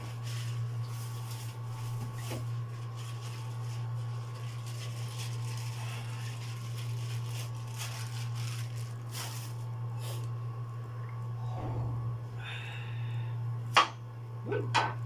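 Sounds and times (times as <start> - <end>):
machine humming: 0.0 - 14.8.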